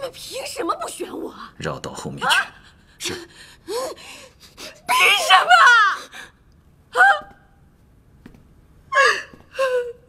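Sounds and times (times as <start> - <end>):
woman gasping and whimpering: 8.9 - 10.0.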